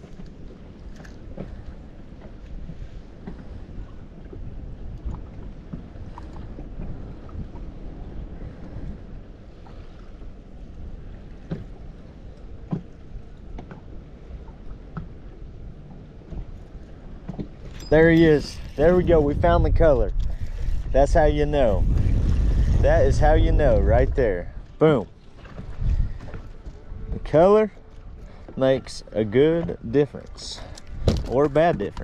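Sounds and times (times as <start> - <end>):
wind and water noise: 0.0 - 32.0.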